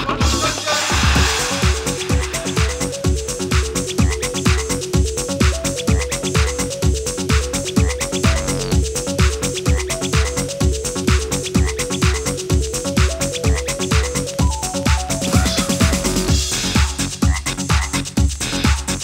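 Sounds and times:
kick drum: 1.1 - 19.0
synth arpeggio: 1.7 - 16.4.

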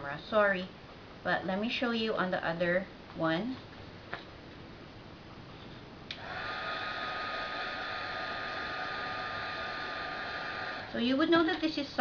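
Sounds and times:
heat gun motor whine: 6.1 - 11.5
rush of hot air: 6.2 - 11.5.

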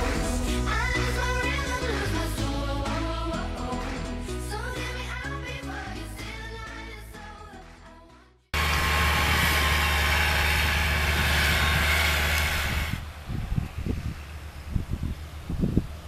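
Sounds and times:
tractor engine under load: 8.6 - 16.0.

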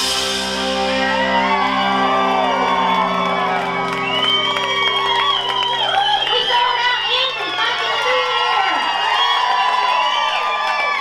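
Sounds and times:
band chord ringing out: 0.0 - 5.1
crowd cheering and whooping: 0.0 - 11.0.

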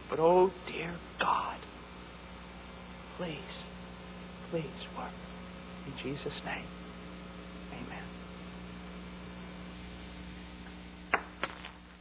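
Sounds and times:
electrical hum with low hiss: 0.0 - 12.0.

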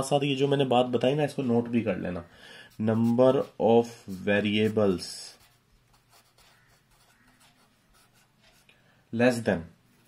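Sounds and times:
marker pen scratching on paper: 2.7 - 8.7.

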